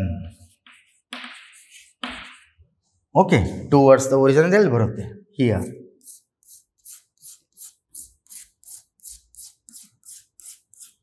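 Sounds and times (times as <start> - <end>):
chalk scratching on chalkboard: 0.3 - 2.6, 6.0 - 11.0.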